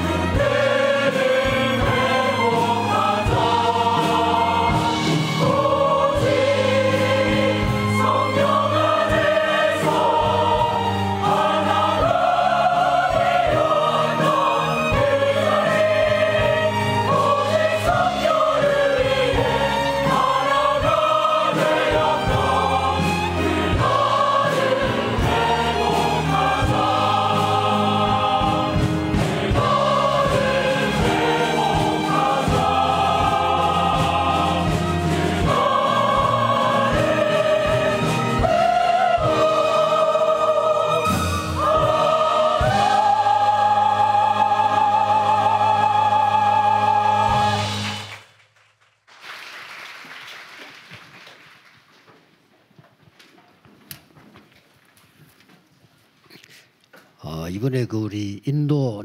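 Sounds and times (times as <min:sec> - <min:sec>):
mixed choir singing: 0:00.0 - 0:48.1
instrumental accompaniment: 0:00.0 - 0:48.2.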